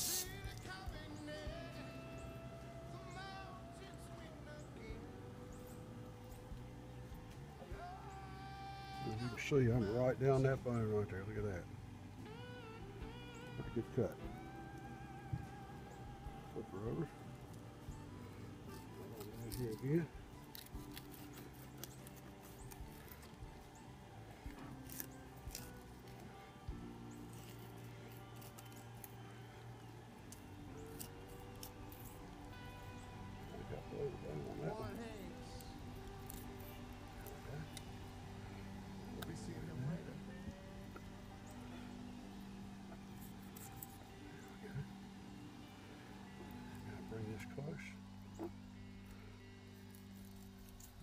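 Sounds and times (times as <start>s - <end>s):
slow song with singing: 0.0s - 9.7s, 12.2s - 19.0s.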